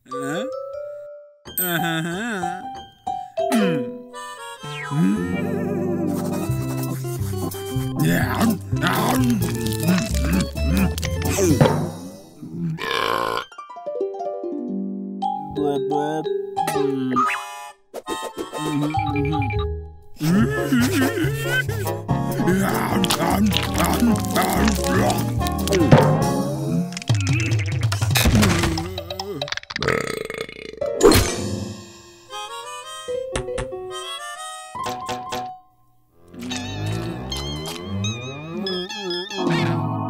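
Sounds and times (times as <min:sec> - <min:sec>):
cartoon croaking burp: 0:12.4 - 0:13.6, 0:27.1 - 0:31.2, 0:38.3 - 0:40.0
long cartoon burp: 0:12.7 - 0:13.5, 0:29.8 - 0:30.9.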